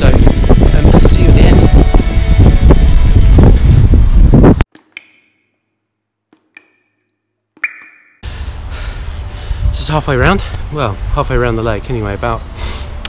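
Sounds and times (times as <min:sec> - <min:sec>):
wind buffeting microphone: 0:00.0 - 0:04.6
faint ringing pings: 0:06.7 - 0:08.2.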